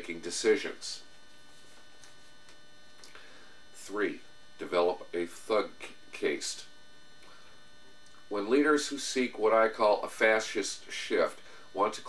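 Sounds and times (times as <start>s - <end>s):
high-pitched whine: 0.0s - 12.0s
low electrical hum: 0.0s - 12.0s.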